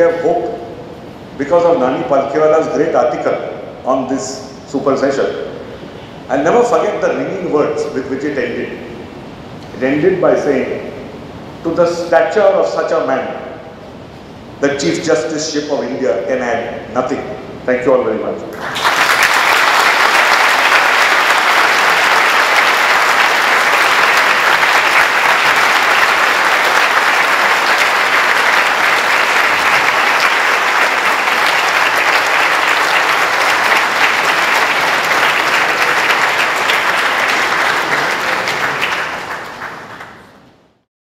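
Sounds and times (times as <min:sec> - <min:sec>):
audience applauding: 0:18.6 - 0:40.4.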